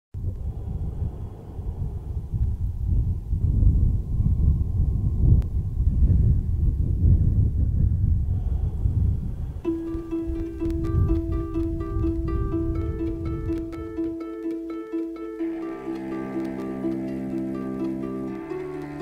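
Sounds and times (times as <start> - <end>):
wind rumble on microphone: 0.2 - 14.2
plucked string music: 9.6 - 19.0.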